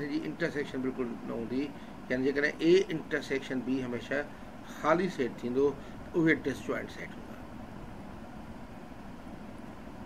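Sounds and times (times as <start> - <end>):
low room rumble and hiss: 0.0 - 10.0.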